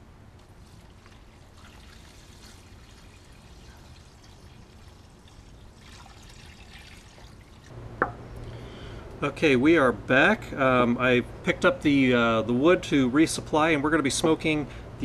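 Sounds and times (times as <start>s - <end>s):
liquid trickling into bag: 0.4s - 7.7s.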